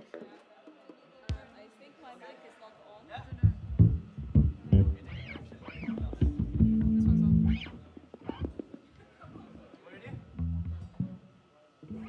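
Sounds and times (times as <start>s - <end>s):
bass guitar notes: 3.3s - 8.6s, 10.2s - 12.0s
drum hits: 5.8s - 7.6s.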